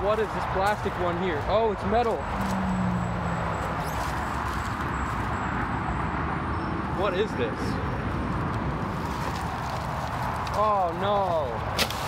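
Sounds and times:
road traffic roar: 0.0 - 12.0.

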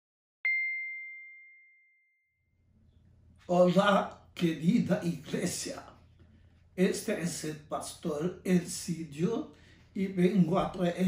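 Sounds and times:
bright chime ringing: 0.5 - 2.1.

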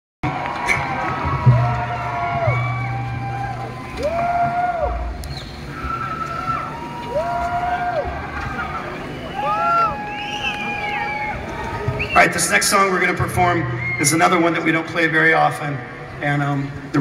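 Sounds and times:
concert crowd cheering: 0.2 - 15.8.

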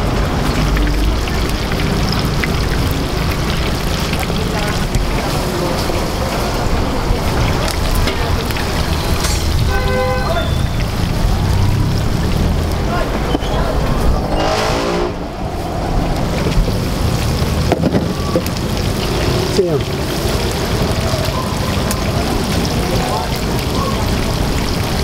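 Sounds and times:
background voices: 0.0 - 9.5
oil sizzling and bubbling: 0.0 - 25.0
low rumble: 10.7 - 19.0.

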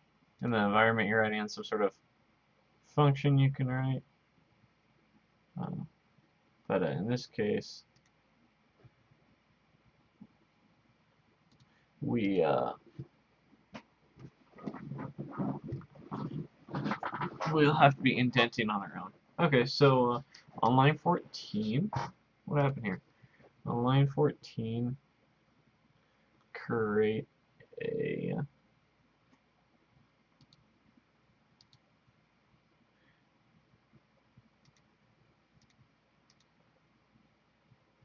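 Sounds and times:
faint computer clicks: 11.5 - 12.4, 30.4 - 30.7, 34.6 - 34.9, 35.6 - 36.6
man mumbling: 14.7 - 23.0.

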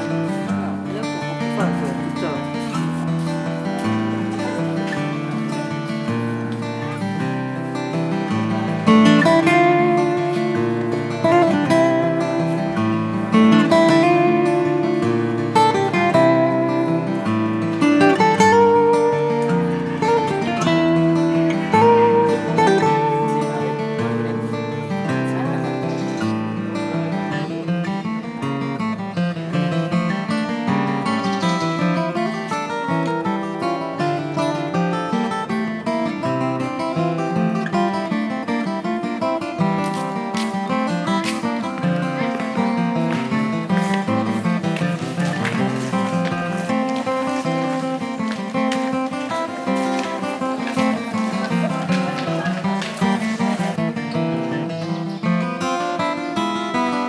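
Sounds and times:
acoustic guitar melody: 0.0 - 57.0.

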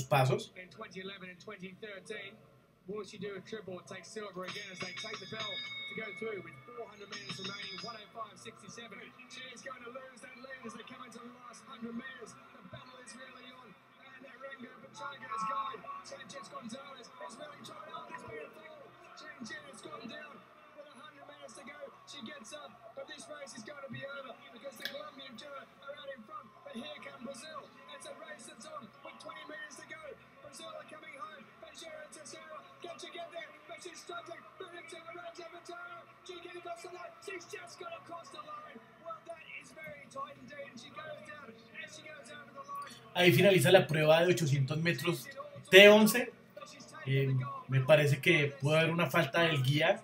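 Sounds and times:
person speaking: 0.0 - 0.5, 43.2 - 46.2
voice talking: 0.0 - 0.5, 43.1 - 46.3, 47.1 - 50.0
music: 2.9 - 50.0.

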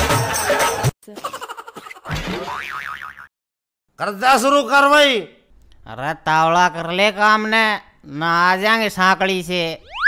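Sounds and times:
springy cartoon boing: 2.4 - 3.3.

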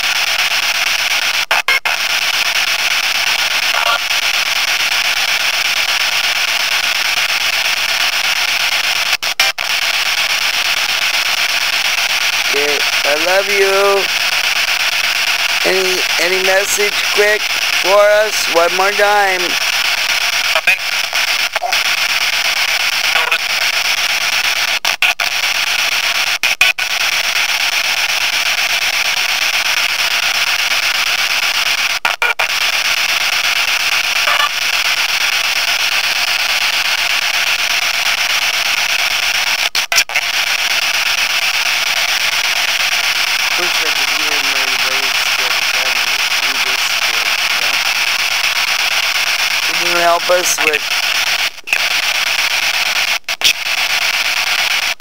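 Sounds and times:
radio static hiss: 0.0 - 55.0
faint voice-like fragments: 12.5 - 14.1, 15.6 - 19.6, 43.5 - 47.9, 49.6 - 50.8.

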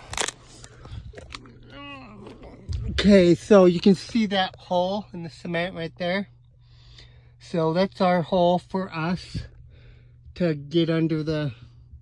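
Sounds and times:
person grunting: 1.4 - 3.0.

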